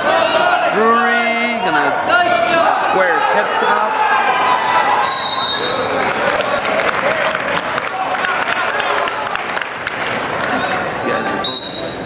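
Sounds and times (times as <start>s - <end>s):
crowd noise and voices: 0.0s - 12.0s
referee's whistle: 5.0s - 5.8s, 11.4s - 12.0s.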